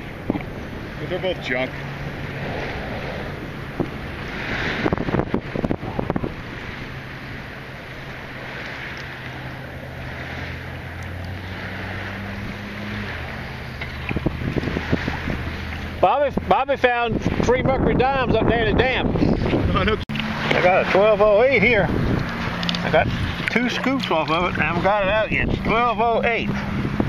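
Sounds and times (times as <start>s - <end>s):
knocks and splashes: 0.0s - 17.5s, 19.1s - 27.0s
water lapping and sloshing: 0.0s - 27.0s
wind buffeting microphone: 0.0s - 27.0s.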